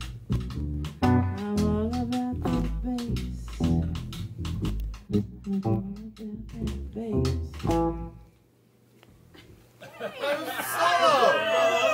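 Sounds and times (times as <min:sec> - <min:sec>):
drum kit: 0:00.0 - 0:08.2
live band playing: 0:00.0 - 0:08.2
upright double bass: 0:00.0 - 0:08.3.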